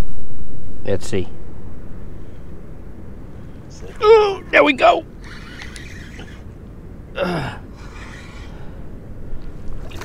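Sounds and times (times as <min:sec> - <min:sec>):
low background noise: 0:00.0 - 0:10.0
fishing reel cranking: 0:05.2 - 0:06.4.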